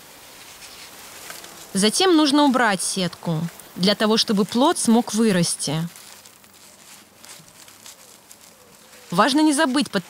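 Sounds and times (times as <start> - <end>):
mesh bag rustling and crinkling: 0.0 - 10.0.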